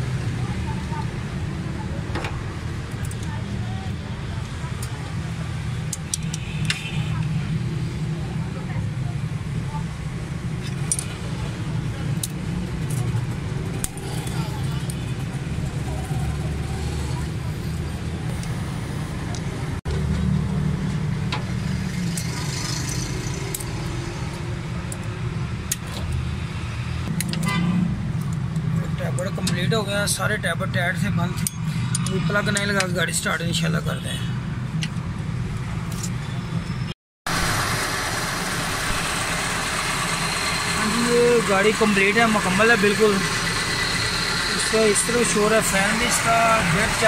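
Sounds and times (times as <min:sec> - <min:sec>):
car engine idling: 0:37.3 - 0:47.0.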